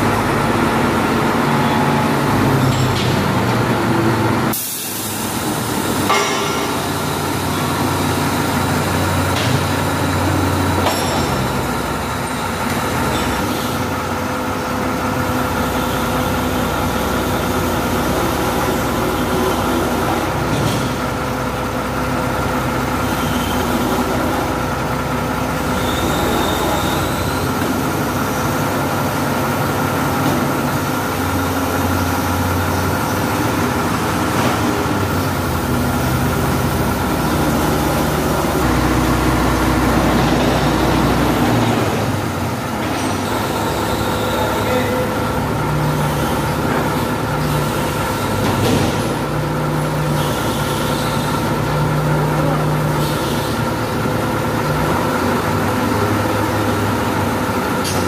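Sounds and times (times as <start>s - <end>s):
constant hydraulic whine: 0.0s - 58.0s
crane engine and hydraulics: 0.0s - 58.0s.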